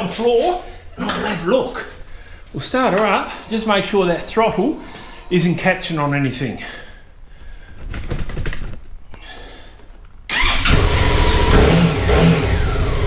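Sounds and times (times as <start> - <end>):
motorcycle engine starting and running: 10.3 - 13.0.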